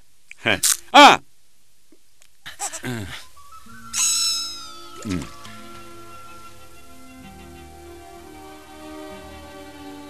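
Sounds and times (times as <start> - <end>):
soft music: 3.6 - 10.0
high squeaky cartoon creature cry: 3.9 - 4.9.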